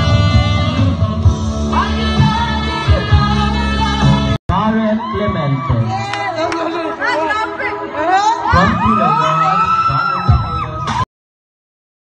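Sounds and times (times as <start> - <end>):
crowd of people chattering: 4.5 - 10.4.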